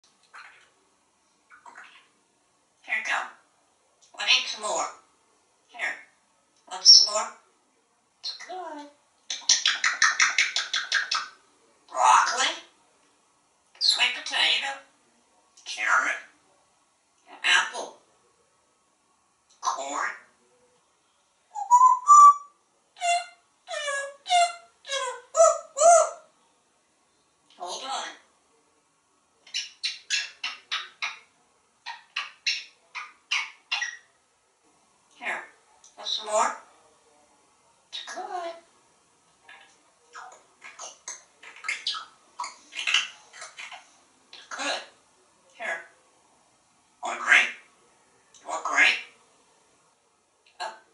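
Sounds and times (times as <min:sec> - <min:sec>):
parrot whistled calls: 0:21.5 - 0:26.2.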